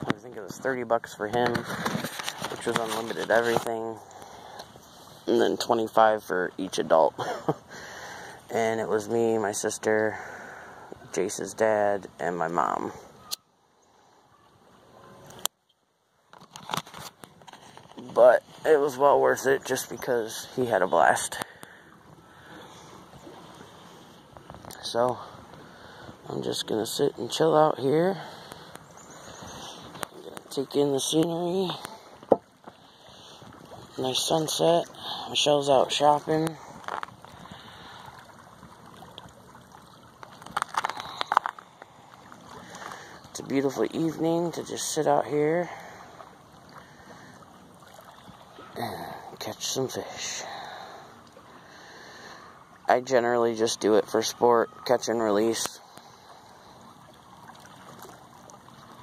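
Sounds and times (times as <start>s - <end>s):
water lapping at rocks: 16.3s - 59.0s.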